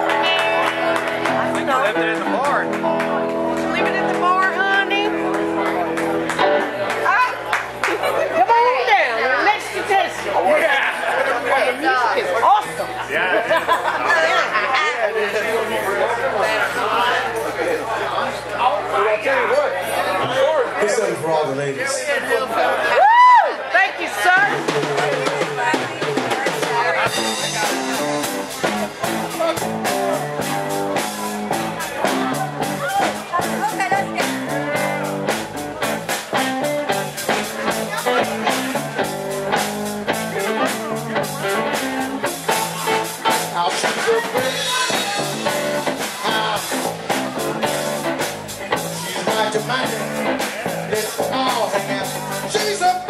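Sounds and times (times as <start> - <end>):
electric guitars ringing chord: 0.0 - 10.5, 26.8 - 53.0
live band playing: 0.0 - 17.4, 23.0 - 53.0
crowd noise: 0.0 - 53.0
voices: 0.0 - 53.0.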